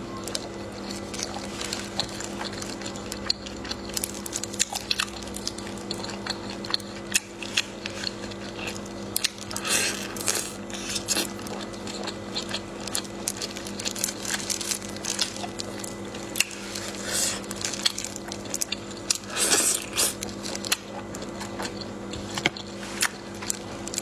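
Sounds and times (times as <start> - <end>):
steady low hum: 0.0 - 24.0
wet chewing: 0.2 - 24.0.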